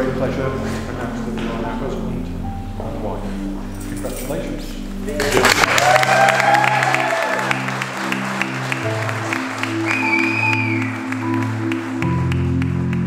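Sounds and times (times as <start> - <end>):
slow sustained chords: 0.0 - 13.0
crowd clapping: 5.2 - 13.0.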